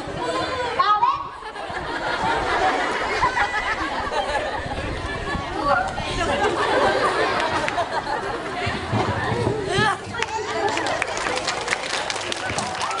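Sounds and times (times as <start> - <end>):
overlapping voices talking: 0.0 - 13.0.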